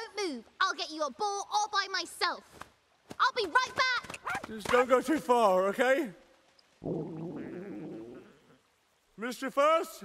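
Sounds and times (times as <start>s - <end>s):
low gurgling rumble: 6.8s - 8.9s.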